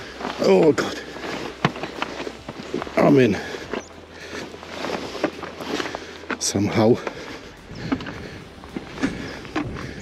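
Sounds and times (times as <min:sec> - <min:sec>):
footsteps on boggy ground: 0:00.0 - 0:10.0
grass rustling: 0:00.0 - 0:10.0.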